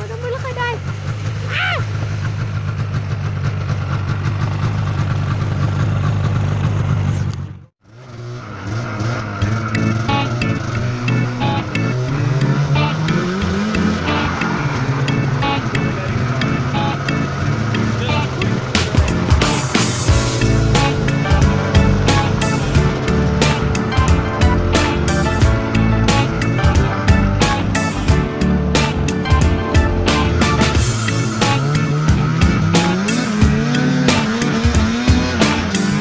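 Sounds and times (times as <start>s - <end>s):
snowmobile engine running: 0.0s - 36.0s
background music: 9.5s - 36.0s.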